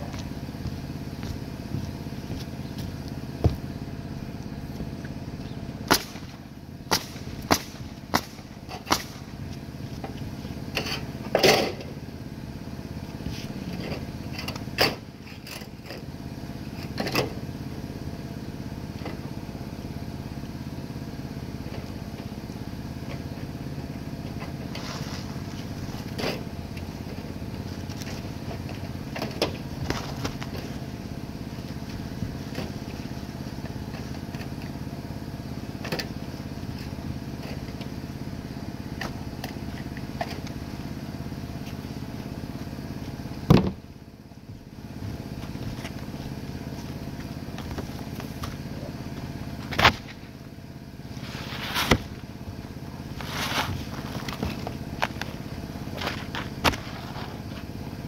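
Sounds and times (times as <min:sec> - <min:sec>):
air compressor droning: 0:00.0 - 0:58.0.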